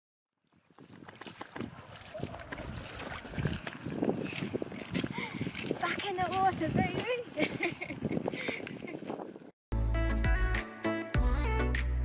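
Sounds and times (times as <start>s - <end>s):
wading splashes in water: 0.4s - 8.8s.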